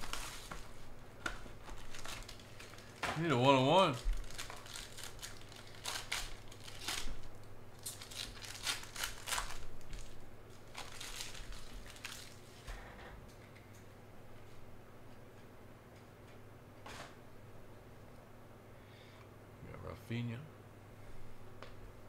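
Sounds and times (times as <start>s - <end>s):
foil wrapper tearing and crinkling: 0.0s - 0.8s, 1.5s - 12.6s.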